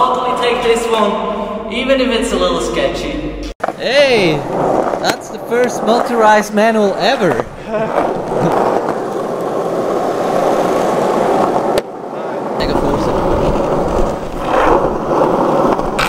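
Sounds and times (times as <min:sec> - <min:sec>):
skateboard wheels rolling on asphalt: 0:03.6 - 0:16.0.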